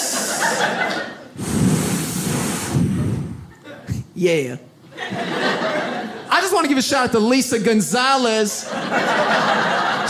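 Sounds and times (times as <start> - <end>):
crowd laughing and cheering: 0.0 - 1.4, 4.9 - 6.5, 8.6 - 10.0.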